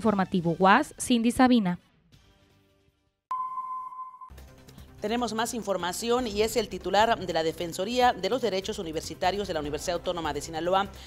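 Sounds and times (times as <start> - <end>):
electronic beep tone: 3.3 - 4.4.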